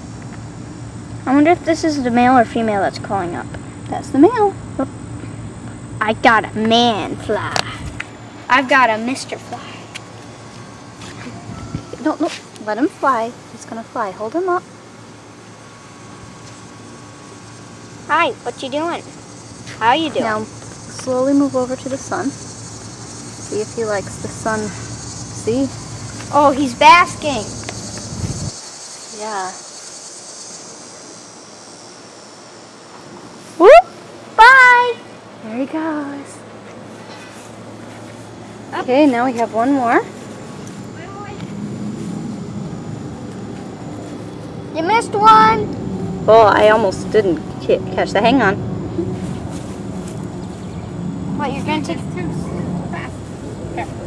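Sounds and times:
low hum: 0.0 - 28.6, 35.5 - 54.0
thin high whine: 0.0 - 54.0
even hiss: 17.3 - 32.8.

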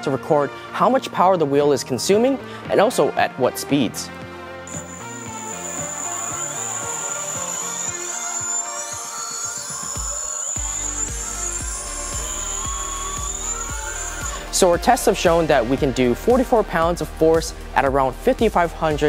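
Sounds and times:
background music with a beat: 3.8 - 19.0
electric motor whine: 4.7 - 14.8.

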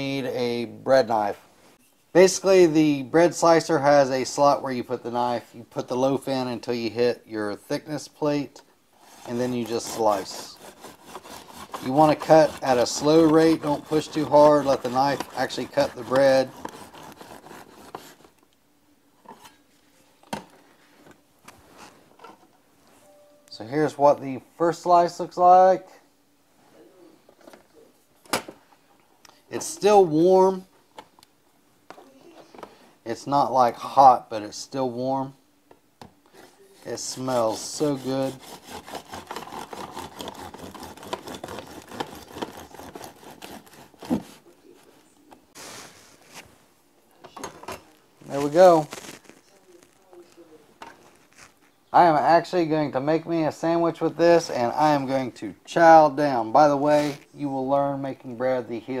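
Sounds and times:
bread knife sawing through bread: 9.0 - 18.3, 36.8 - 44.5
soft scrapes and rustles: 9.0 - 18.4, 19.2 - 23.1, 36.3 - 46.8, 47.7 - 51.8, 56.8 - 57.4.

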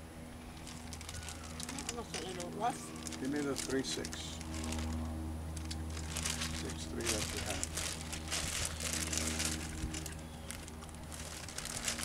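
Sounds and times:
steady low hum: 0.0 - 12.0
plastic bag crinkling: 0.6 - 5.0, 5.6 - 12.0.

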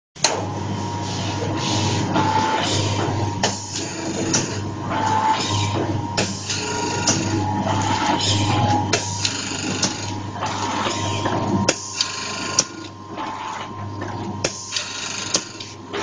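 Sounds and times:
machine motor hum: 0.2 - 16.0.

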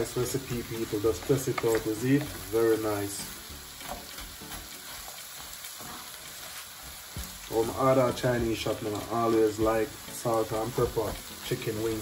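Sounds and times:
vegetables sizzling in a frying pan: 0.0 - 12.0
wooden spoon stirring: 0.3 - 3.2.

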